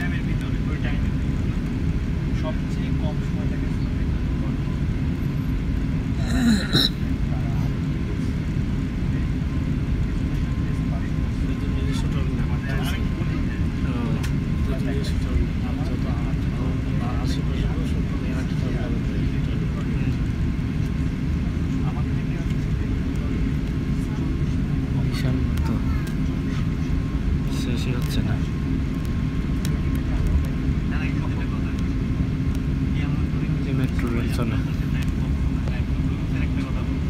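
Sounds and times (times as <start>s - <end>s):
aircraft cabin rumble: 0.0s - 37.0s
faint passenger voices: 0.0s - 37.0s.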